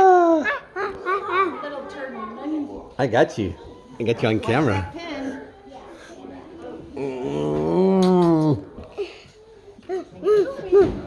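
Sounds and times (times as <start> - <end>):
person play-growling: 7.0 - 8.6.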